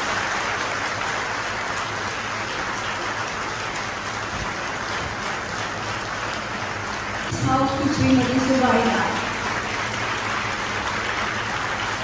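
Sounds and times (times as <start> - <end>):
audience applause: 0.0 - 12.0.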